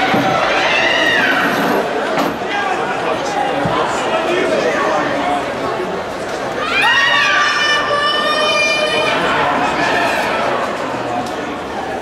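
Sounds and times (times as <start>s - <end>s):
crowd chatter in a hall: 0.0s - 12.0s
high-pitched shout: 6.6s - 9.2s.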